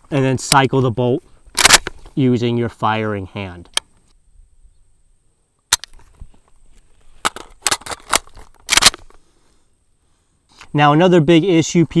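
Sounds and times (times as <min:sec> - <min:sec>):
rifle being reloaded: 0:01.6 - 0:02.0, 0:05.7 - 0:06.0, 0:07.2 - 0:09.2.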